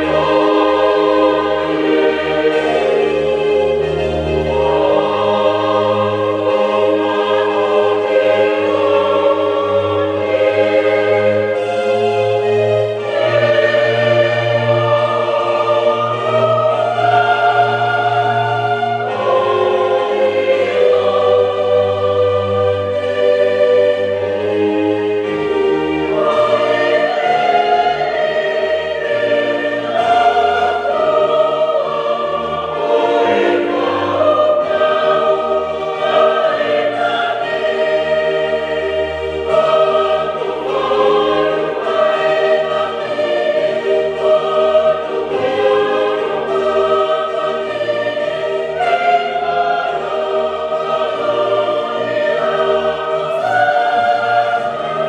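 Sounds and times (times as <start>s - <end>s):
choir singing a slow hymn: 0.0s - 55.0s
sustained low accompaniment notes: 0.0s - 55.0s.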